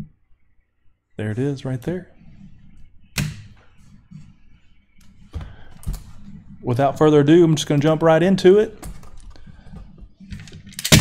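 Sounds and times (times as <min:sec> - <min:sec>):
faint handling noise: 0:01.8 - 0:10.8.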